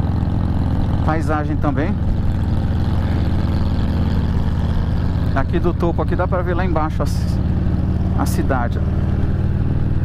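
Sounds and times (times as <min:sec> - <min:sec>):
motorcycle engine running: 0:00.0 - 0:10.0
wind and road rush: 0:00.0 - 0:10.0.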